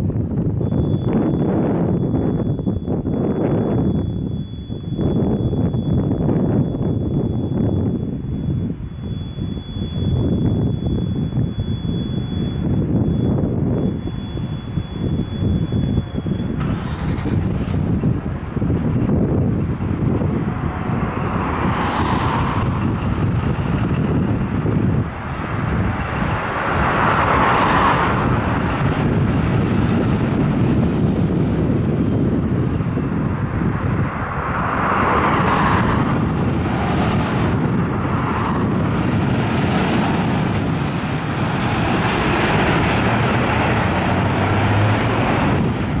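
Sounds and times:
fire engine diesel engine rumbling: 0.0s - 46.0s.

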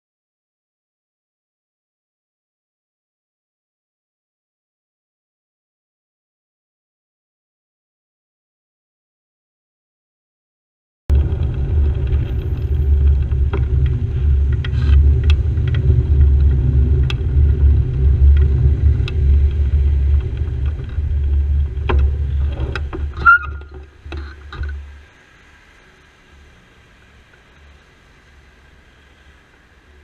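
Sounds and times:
wind on microphone: 11.1s - 25.0s
bicycle road rumble: 11.1s - 30.0s
faint traffic: 11.1s - 30.0s
short high squeal: 23.2s - 23.7s.

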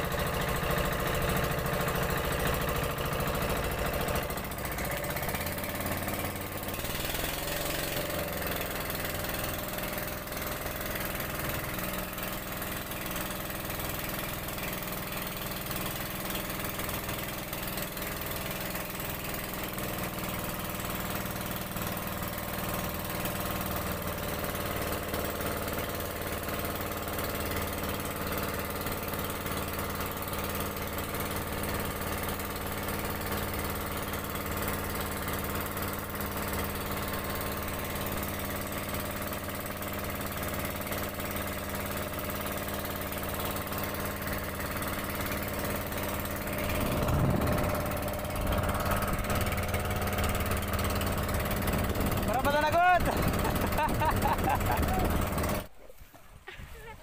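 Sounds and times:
boat engine running: 0.0s - 55.8s.

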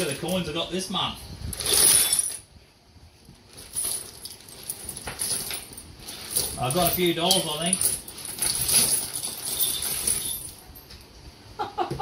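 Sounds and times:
coins clinking and sliding: 3.6s - 10.7s.

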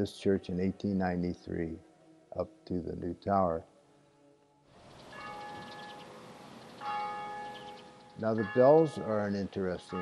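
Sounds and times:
church bell tolling: 5.1s - 10.0s.

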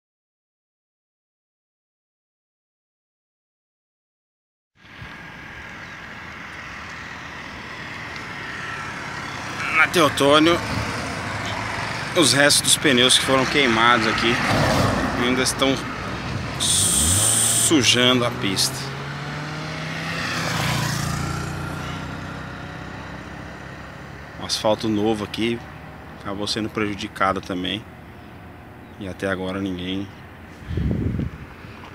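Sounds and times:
passing car tyre and engine noise: 4.8s - 31.9s.

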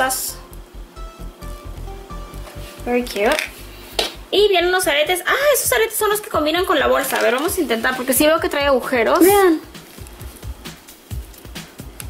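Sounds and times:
quiet music with pulsing bass: 0.0s - 12.0s.

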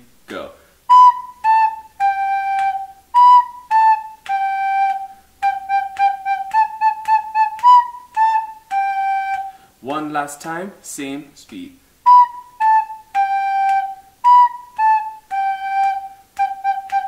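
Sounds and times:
recorder melody: 0.9s - 9.6s, 12.0s - 17.0s.

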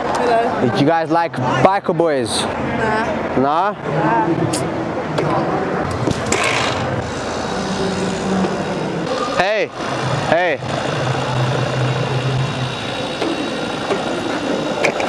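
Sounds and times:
indistinct background chatter: 0.0s - 15.0s
steady low hum: 2.4s - 15.0s
swooping tones: 6.8s - 15.0s.

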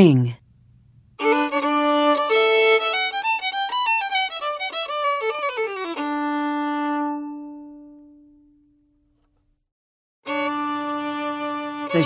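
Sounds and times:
fiddle note ringing: 1.2s - 8.3s.

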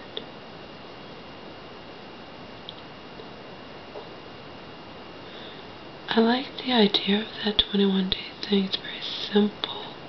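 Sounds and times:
woman speaking softly: 6.1s - 10.0s.

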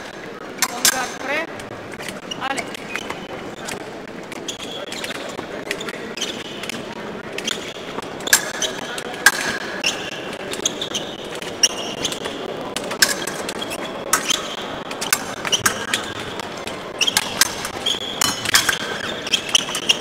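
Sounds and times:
shoes squeaking and tapping: 0.0s - 20.0s.

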